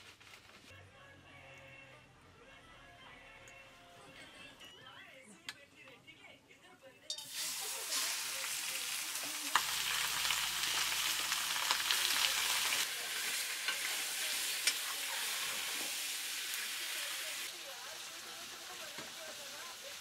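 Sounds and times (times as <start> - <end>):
meat sizzling in hot oil: 7.2 - 20.0.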